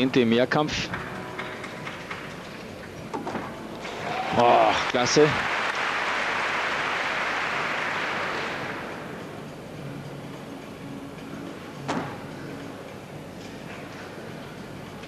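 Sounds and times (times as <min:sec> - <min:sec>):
arena crowd applauding: 0:03.8 - 0:09.0.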